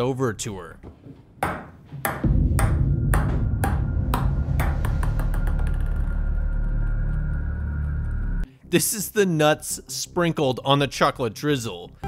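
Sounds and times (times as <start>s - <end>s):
ball bouncing with ringing clank: 1.4s - 6.3s
loud low droning rumble: 2.3s - 8.4s.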